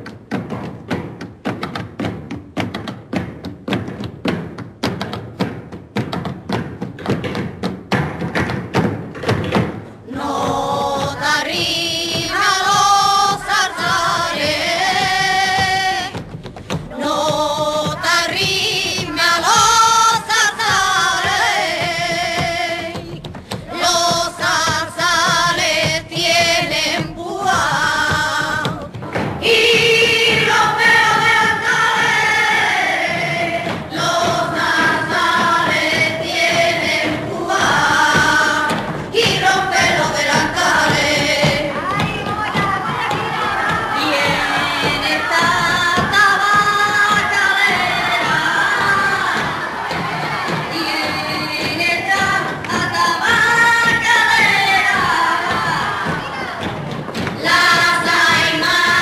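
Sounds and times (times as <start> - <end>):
women singing flamenco song: 0.0 - 59.0.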